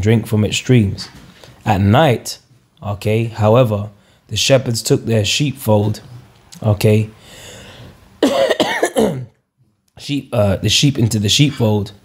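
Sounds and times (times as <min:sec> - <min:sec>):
man coughing and clearing throat: 0:08.2 - 0:09.4.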